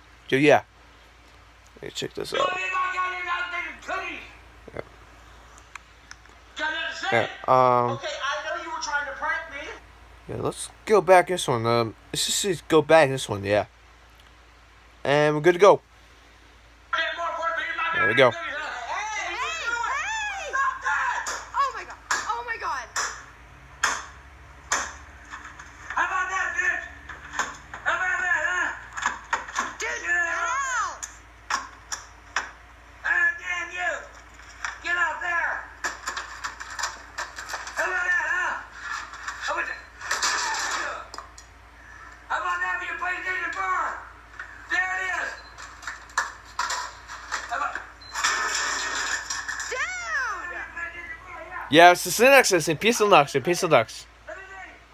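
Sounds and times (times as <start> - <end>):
man yelling: 2.2 - 4.4, 17.0 - 21.7, 26.0 - 27.0, 27.8 - 28.9, 29.8 - 31.0, 33.0 - 34.1, 34.8 - 35.8, 37.8 - 38.7, 42.3 - 44.1, 44.7 - 45.4, 49.8 - 54.9
sharp knocks: 23.0 - 25.5
game console smashed with blows: 40.0 - 41.0, 48.2 - 49.7.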